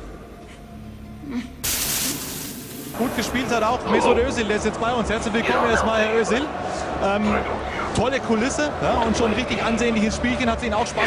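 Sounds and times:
loud steady hiss: 1.6 - 3.6.

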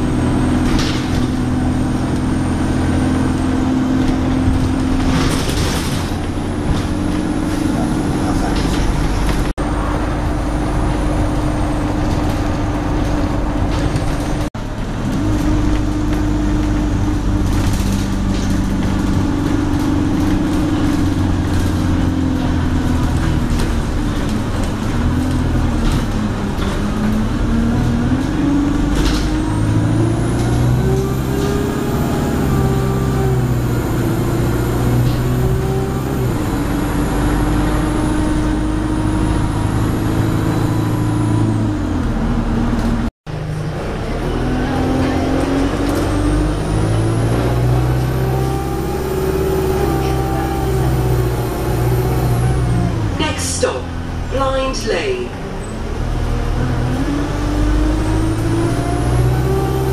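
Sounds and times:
bus diesel engine: 0.0 - 59.9
road noise: 0.0 - 59.9.

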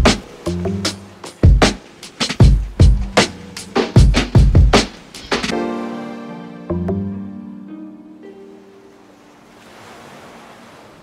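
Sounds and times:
surf wave washing up shore: 0.0 - 6.7, 8.2 - 11.0
lo-fi music: 0.0 - 9.2.

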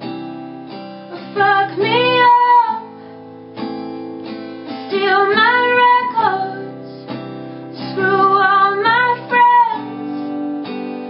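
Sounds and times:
acoustic guitar strumming: 0.0 - 11.0
woman singing: 1.1 - 3.0, 4.7 - 11.0.

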